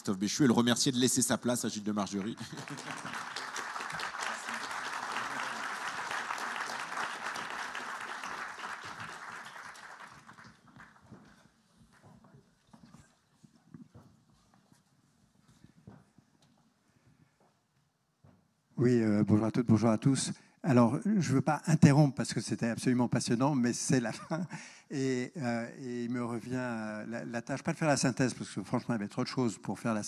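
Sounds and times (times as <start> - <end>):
audience applauding: 1.9 - 11.5
faint knocks and shuffles: 11.0 - 18.6.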